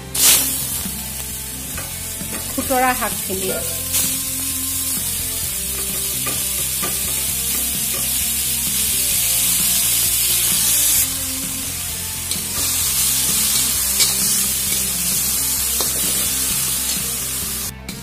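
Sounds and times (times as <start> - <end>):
greens sizzling in a pan: 0.0 - 17.7
spatula stirring: 12.2 - 17.5.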